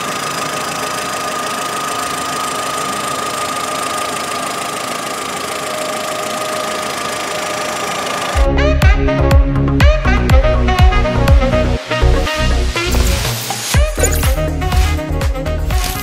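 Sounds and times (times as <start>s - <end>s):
car engine idling: 0.0s - 8.4s
high-pitched whine: 12.8s - 14.4s.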